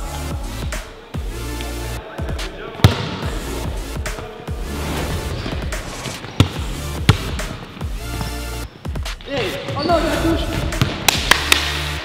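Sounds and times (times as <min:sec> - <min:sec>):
background music: 0:00.0 - 0:12.0
basketball bouncing on hardwood: 0:06.2 - 0:08.4, 0:10.5 - 0:11.1.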